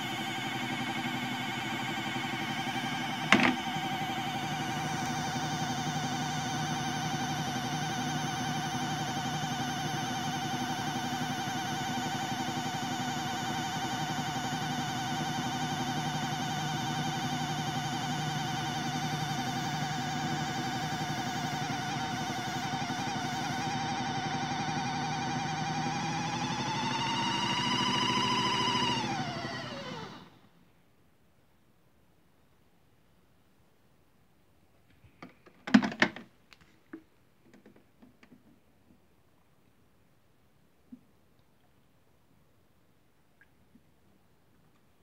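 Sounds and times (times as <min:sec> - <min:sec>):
small electric motor whining: 0:00.0 - 0:30.4.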